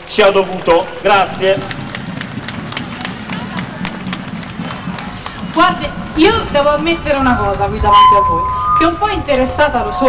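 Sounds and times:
crowd applauding: 0.0s - 7.7s
murmur of voices: 0.0s - 10.0s.

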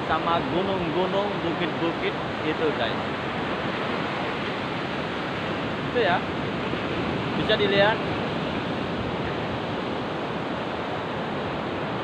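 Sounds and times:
surf washing onto beach: 0.0s - 12.0s
wind on microphone: 0.0s - 12.0s.

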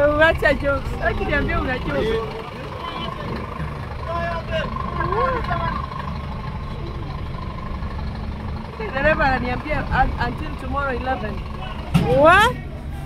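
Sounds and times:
people talking: 0.0s - 5.9s, 8.8s - 12.9s
truck engines idling: 0.0s - 13.0s.

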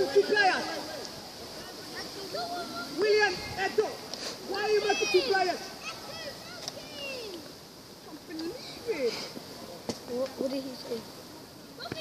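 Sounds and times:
distant children shouting: 4.5s - 7.6s.

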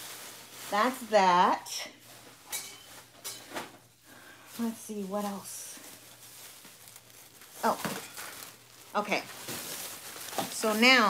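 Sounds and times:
items knocking and rustling: 2.0s - 3.9s, 5.8s - 11.0s.

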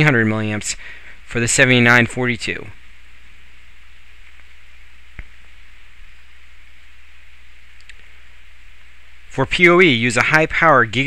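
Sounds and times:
low hum: 0.0s - 11.0s
steady hiss: 0.0s - 11.0s
faint click: 4.2s - 5.6s, 7.7s - 8.1s.

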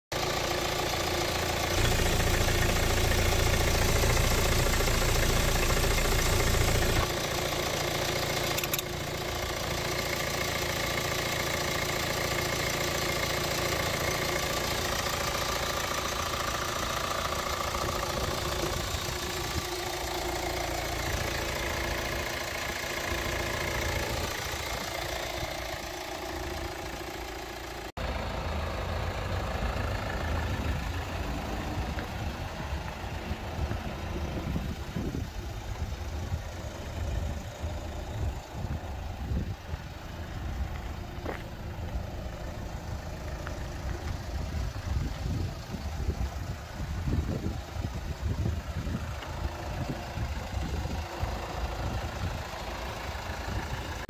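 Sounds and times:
car engine idling: 0.1s - 54.0s.

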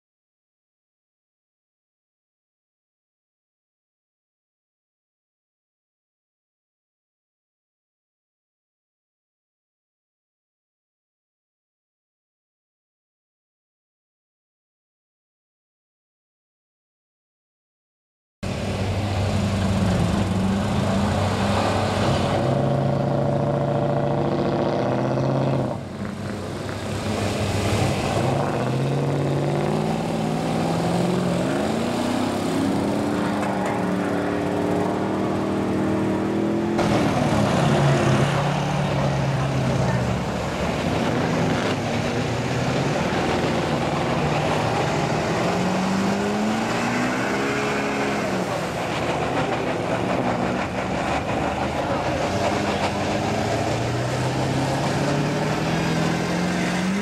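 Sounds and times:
truck engines revving: 18.4s - 57.0s.

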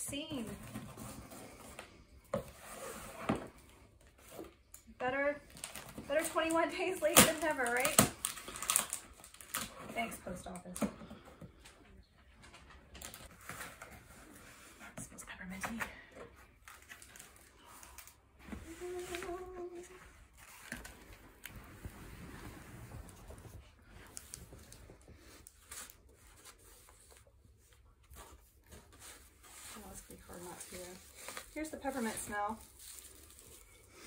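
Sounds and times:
cardboard and paper crinkling: 0.2s - 11.4s, 12.2s - 34.0s.

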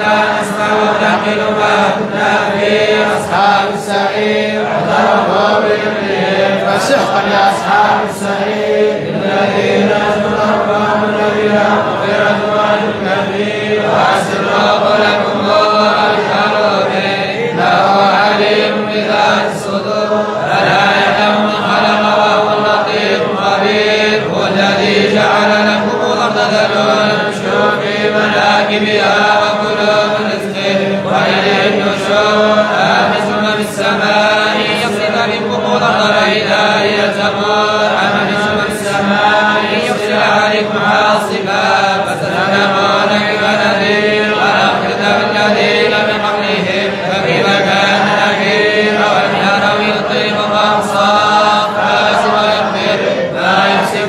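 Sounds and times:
men chanting in unison: 0.0s - 54.0s.

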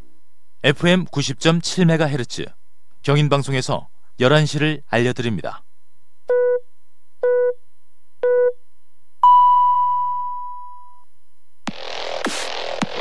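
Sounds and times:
long high beep: 9.2s - 11.1s
music: 11.7s - 13.0s.

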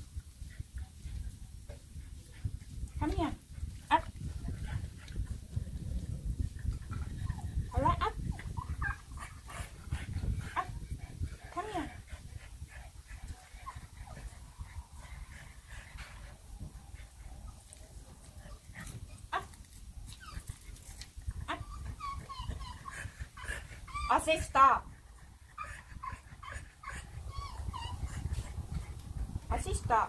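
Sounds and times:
puppy whining: 18.8s - 24.3s, 25.6s - 28.5s.

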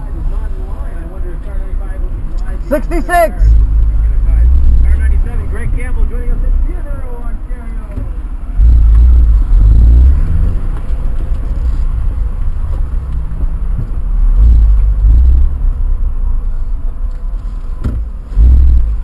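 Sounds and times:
car engine rumble from inside: 0.0s - 19.0s.

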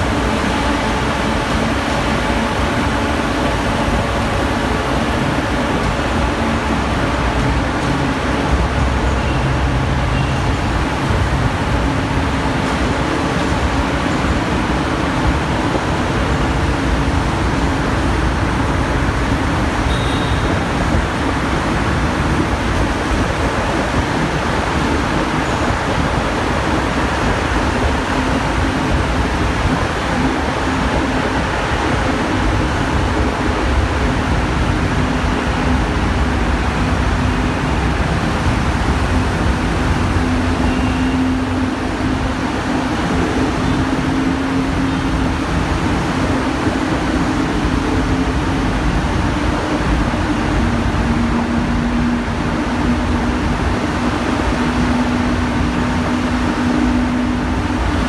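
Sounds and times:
car and motorbike engines: 0.0s - 58.0s
tyres on road: 0.0s - 58.0s.

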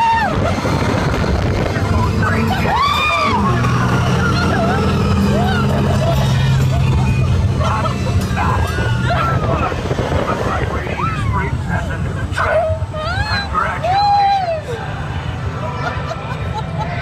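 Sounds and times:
ride vehicle low drone: 0.0s - 17.0s
riders whooping and shrieking: 0.0s - 17.0s.

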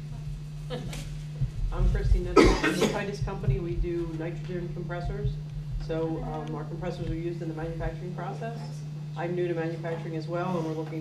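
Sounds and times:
low hum: 0.0s - 11.0s
soft talk: 1.7s - 11.0s
person coughing: 2.4s - 3.1s.

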